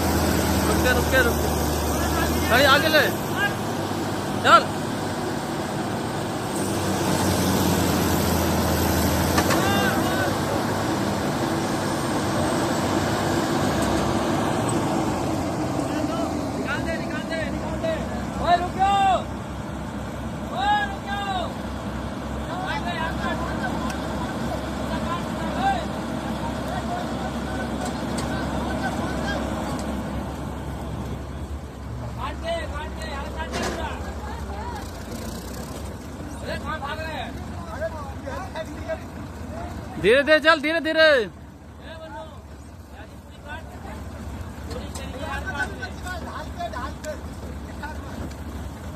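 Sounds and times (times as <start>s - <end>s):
diesel engines under load: 0.0s - 48.9s
men shouting: 9.4s - 10.7s.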